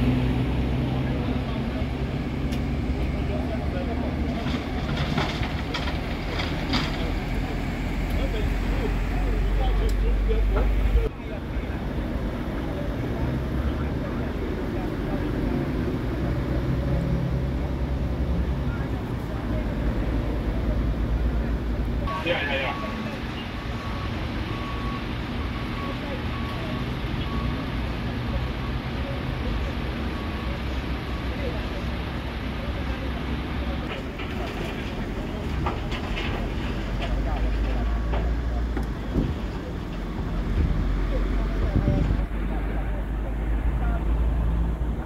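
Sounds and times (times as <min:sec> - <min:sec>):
idling fire engines and lorries: 0:00.0 - 0:45.0
indistinct voices: 0:00.0 - 0:45.0
faint repeated beep: 0:22.1 - 0:27.8.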